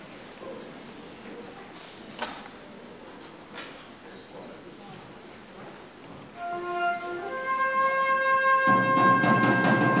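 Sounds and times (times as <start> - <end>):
concert band playing low notes: 6.4 - 10.0
percussion: 6.4 - 10.0
wind instrument holding notes: 6.4 - 10.0.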